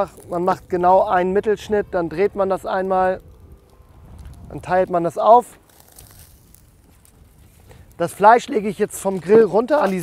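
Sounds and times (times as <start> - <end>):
low wind rumble: 0.0 - 9.8.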